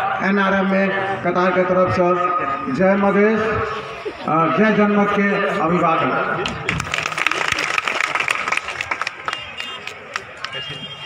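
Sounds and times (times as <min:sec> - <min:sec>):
crowd clapping: 0:06.4 - 0:11.0.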